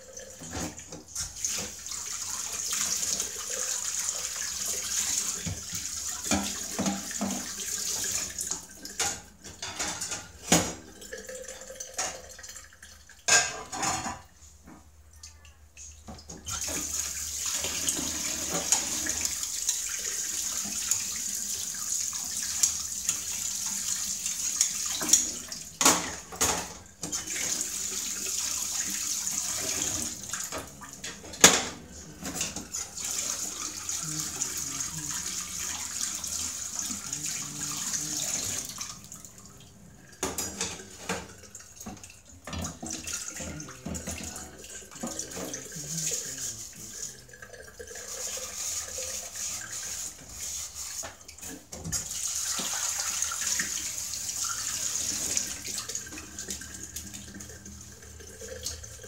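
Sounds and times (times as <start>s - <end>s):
tap water running into sink: 0.0s - 14.9s, 15.8s - 59.0s.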